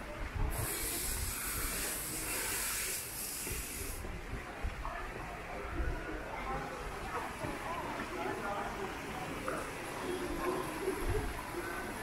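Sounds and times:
steady high hiss: 0:00.5 - 0:04.1.

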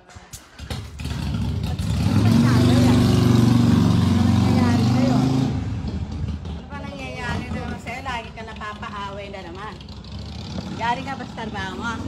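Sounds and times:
low hum of street noise: 0:00.0 - 0:12.0.

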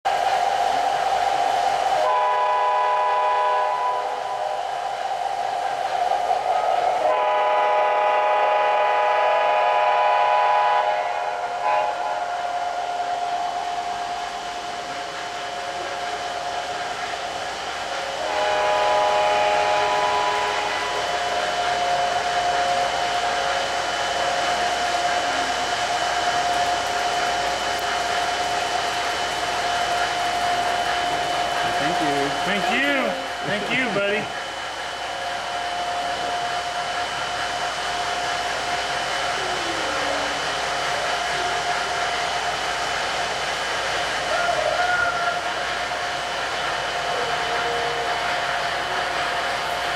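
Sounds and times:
train cars rolling on track: 0:00.0 - 0:49.9
locomotive whine: 0:00.1 - 0:49.9
model train horn blasts: 0:02.0 - 0:04.2, 0:07.0 - 0:12.4, 0:18.2 - 0:21.1.

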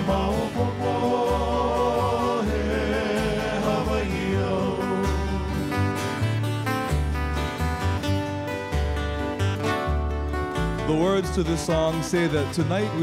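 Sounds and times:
acoustic guitar strumming and picking: 0:00.0 - 0:13.0
deep bass notes: 0:00.0 - 0:13.0.

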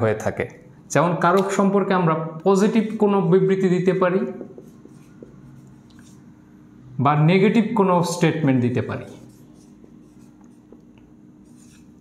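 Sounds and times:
marker writing on whiteboard: 0:03.3 - 0:06.4, 0:08.7 - 0:12.0.

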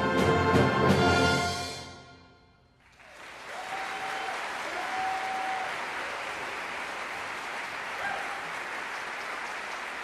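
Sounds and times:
audience applause: 0:02.8 - 0:10.0.

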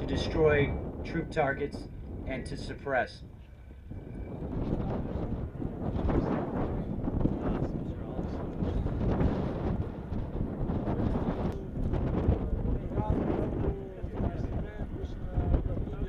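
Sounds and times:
wind buffeting microphone: 0:00.0 - 0:16.0
indistinct group talk: 0:03.1 - 0:16.0.

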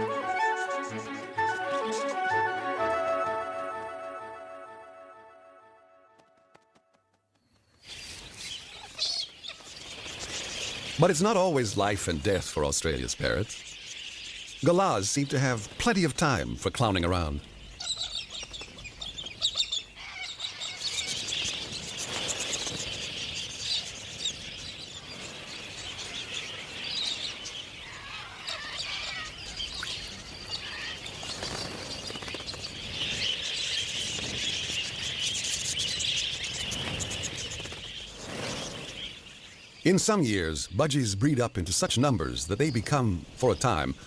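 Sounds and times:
budgerigars chattering: 0:12.6 - 0:38.1.

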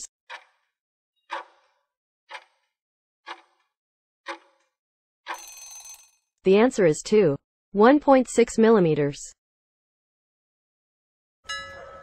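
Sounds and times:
timer ticks: 0:00.3 - 0:00.5, 0:01.3 - 0:01.5, 0:02.3 - 0:02.7, 0:03.3 - 0:03.6, 0:05.3 - 0:05.6
ringing alarm: 0:05.3 - 0:06.1, 0:11.5 - 0:12.0.

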